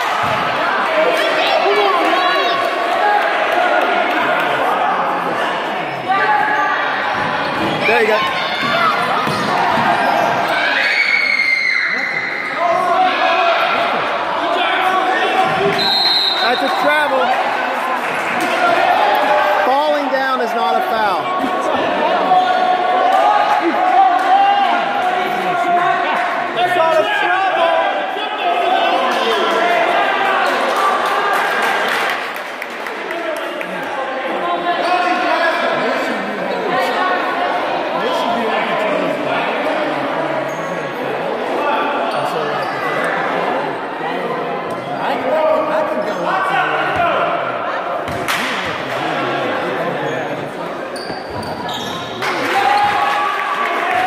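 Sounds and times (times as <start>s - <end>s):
referee's whistle blast: 15.7s - 16.9s.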